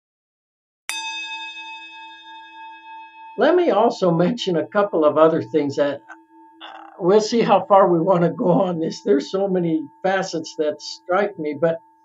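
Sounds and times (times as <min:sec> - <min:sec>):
bell-like chime ringing: 0:00.9 - 0:07.6.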